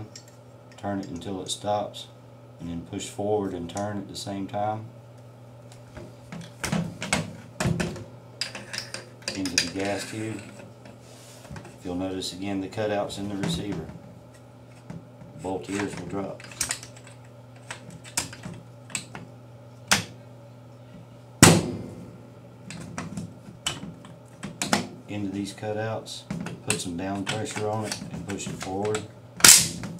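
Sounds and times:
metal parts clicking: 0:15.7 - 0:19.0
loud metallic clank: 0:21.4 - 0:22.2.

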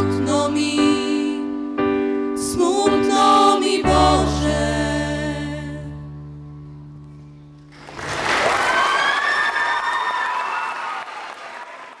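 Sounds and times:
audience applause and cheering: 0:07.7 - 0:12.0.

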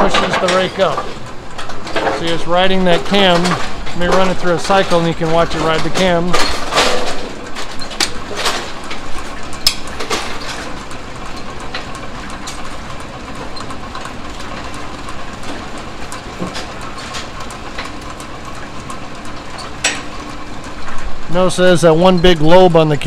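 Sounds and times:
sharp mechanical clicks and knocks: 0:00.0 - 0:22.5
pinsetter machine running: 0:00.0 - 0:23.0.

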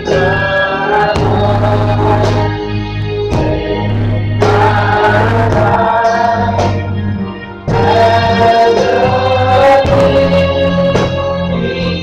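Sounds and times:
electric keyboard: 0:00.0 - 0:12.0
group of voices singing: 0:00.0 - 0:12.0.

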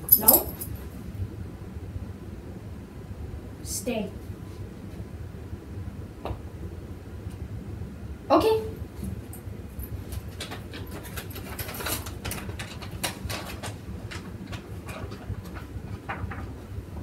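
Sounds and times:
metal chain collar jingling: 0:00.0 - 0:00.8
steady low hum: 0:00.0 - 0:17.0
dog eating with light clicks: 0:10.1 - 0:16.5.

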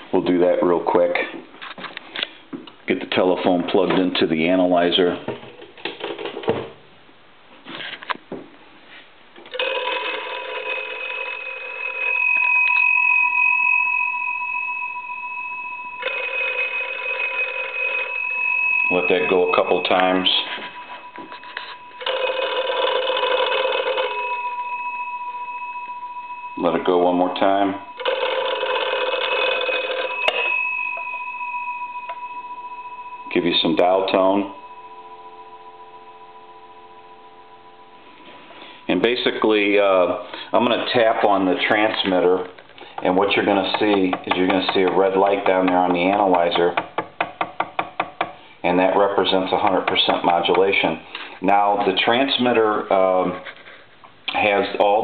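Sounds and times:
telephone bell ringing: 0:09.5 - 0:39.5.

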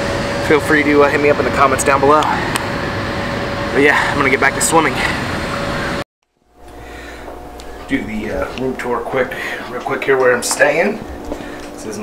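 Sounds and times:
low room hum: 0:00.0 - 0:12.0
steady outdoor hum: 0:00.0 - 0:12.0.

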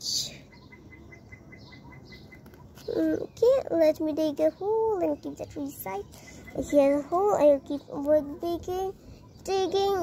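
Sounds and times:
bird chirping in fast pips: 0:00.0 - 0:10.0.

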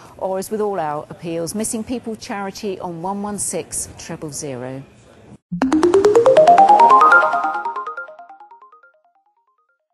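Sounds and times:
electronic music sting: 0:05.5 - 0:08.4.

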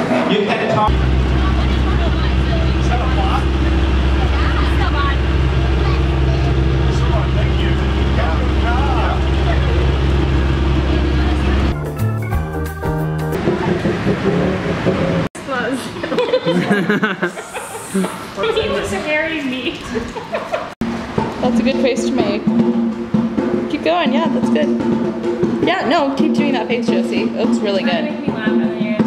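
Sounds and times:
people talking: 0:00.3 - 0:11.8, 0:15.4 - 0:20.1, 0:21.4 - 0:22.5, 0:23.7 - 0:24.8, 0:25.6 - 0:29.0
low engine drone: 0:00.9 - 0:15.4.

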